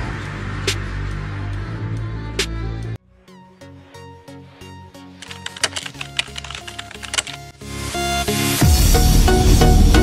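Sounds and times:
background music: 0.0 - 10.0
keyboard typing clicks: 5.2 - 7.5.

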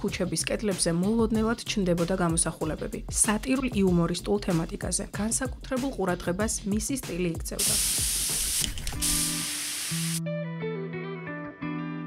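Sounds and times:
spray-paint can hissing: 7.6 - 10.2.

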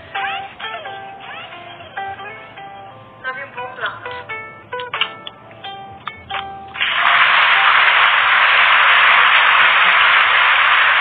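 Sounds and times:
loud steady hiss: 6.8 - 11.0.

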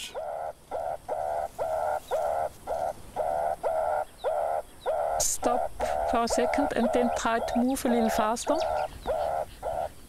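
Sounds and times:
meerkat alarm calls: 0.0 - 10.0.

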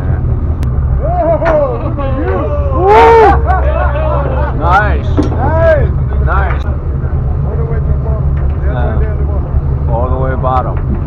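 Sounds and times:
boat engine rumbling: 0.0 - 11.0
people's voices: 1.0 - 10.9.

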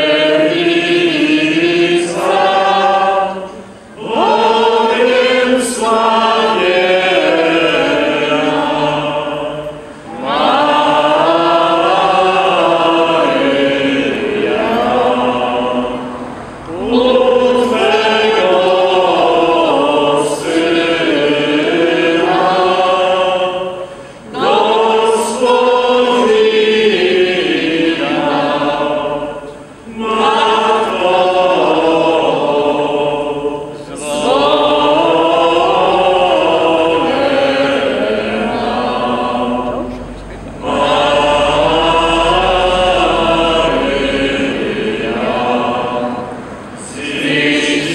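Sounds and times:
group singing a hymn: 0.0 - 47.9.

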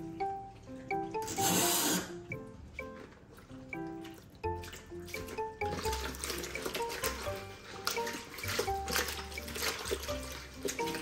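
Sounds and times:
background music: 0.0 - 11.0
tap water splashing into basin: 4.0 - 11.0.

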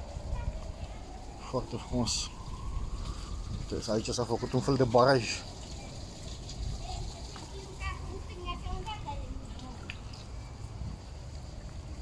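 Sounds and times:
water running along gutter: 0.0 - 12.0.

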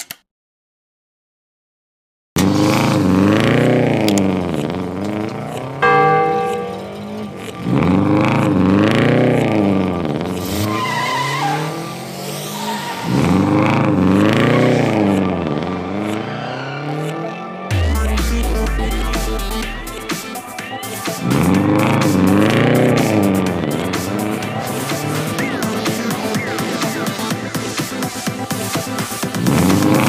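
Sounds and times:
short steady beep: 5.8 - 7.1
music: 17.7 - 30.0.

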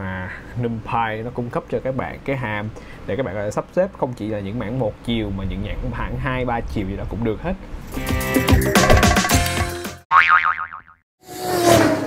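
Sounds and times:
cartoon boing: 10.1 - 11.0.

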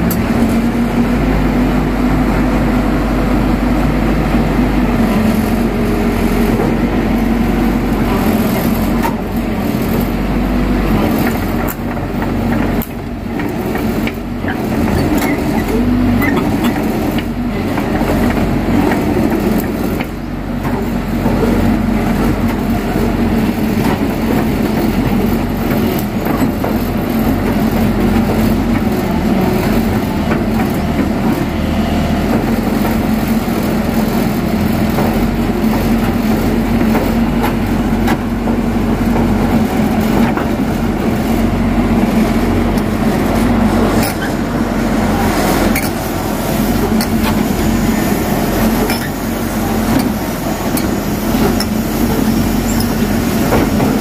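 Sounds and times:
diesel engine under load: 0.0 - 54.0
excavator bucket digging dirt: 0.0 - 54.0.

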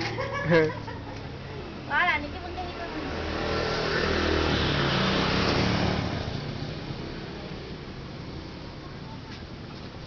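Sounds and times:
motor vehicle passing by: 0.0 - 10.0.

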